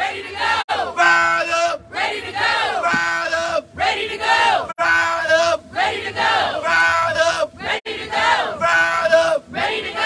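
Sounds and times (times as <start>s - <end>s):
crowd chanting into a microphone: 0.0s - 10.0s.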